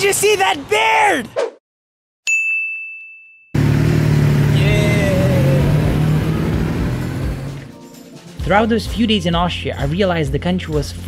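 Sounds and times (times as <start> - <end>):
high ringing ding: 2.3 - 3.6
motorcycle engine passing: 3.6 - 7.7.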